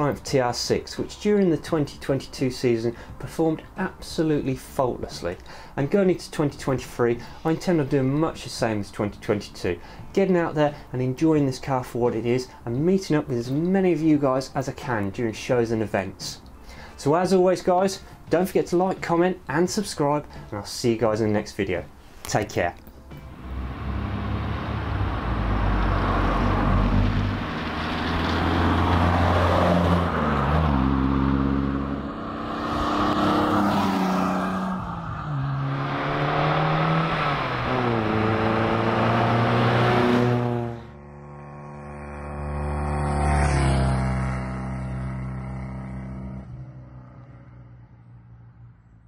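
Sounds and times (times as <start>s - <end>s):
car engine accelerating: 23.1s - 48.8s.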